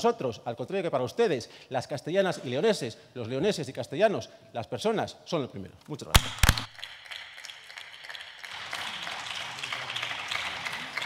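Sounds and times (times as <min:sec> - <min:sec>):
people clapping: 0:06.2 - 0:11.0.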